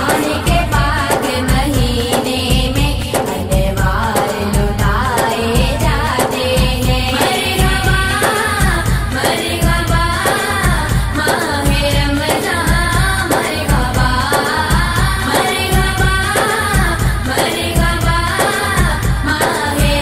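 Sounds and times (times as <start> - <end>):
devotional song singing: 0.0 - 20.0
steady low beat: 0.0 - 20.0.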